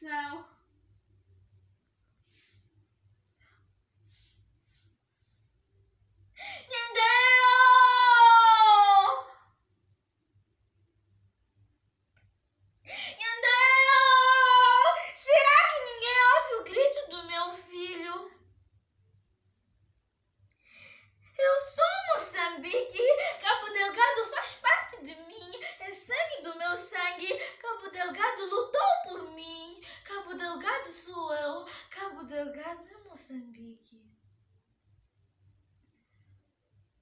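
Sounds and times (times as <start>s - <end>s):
sharp intake of breath: 4.0s - 5.4s
woman reciting emotionally: 6.4s - 9.5s, 12.9s - 18.4s, 21.3s - 34.0s.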